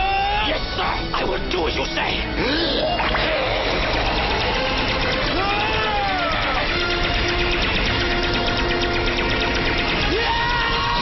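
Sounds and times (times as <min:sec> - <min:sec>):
background music held notes: 0:00.0 - 0:11.0
low rumble with rapid crackling: 0:03.2 - 0:11.0.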